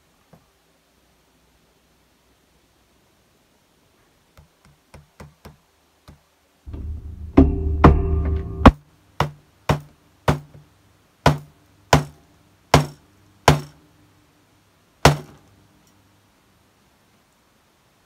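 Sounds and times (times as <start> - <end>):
steady low hum: 6.7 - 8.8.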